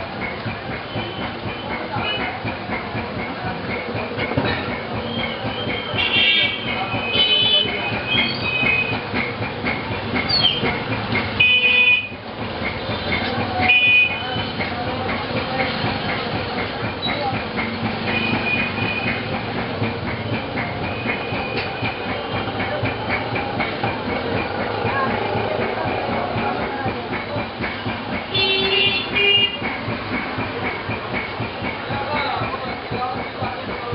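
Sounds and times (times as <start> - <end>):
background din: 0.0 - 33.9
horn toots: 28.3 - 29.7.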